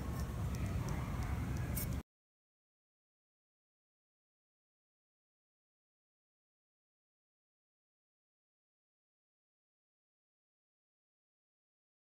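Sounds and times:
room noise: 0.0 - 2.0.

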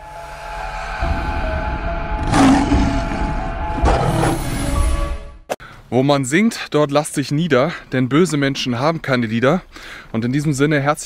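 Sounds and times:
sustained cinematic music: 0.0 - 5.5.

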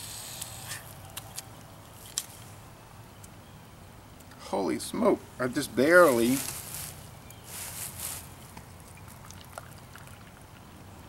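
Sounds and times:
beer foam fizzing: 9.0 - 10.7.

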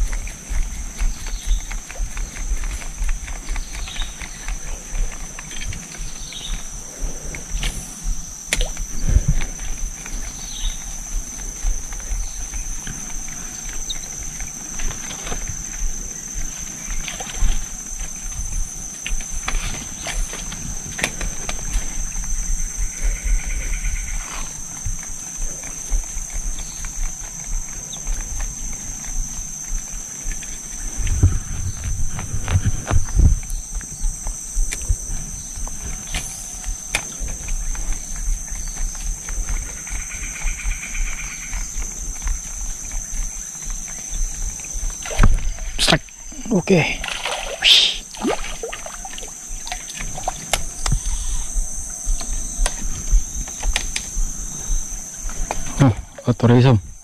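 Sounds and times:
high-pitched insect drone: 0.0 - 57.0
bird calls: 0.7 - 7.7, 12.0 - 14.4, 47.3 - 48.1.

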